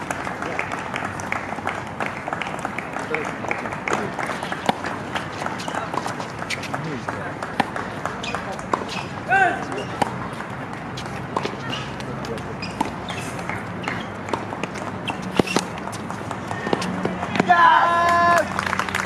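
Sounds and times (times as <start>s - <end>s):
rackets hitting tennis ball: 0.0s - 18.3s
running footsteps on court: 0.0s - 18.3s.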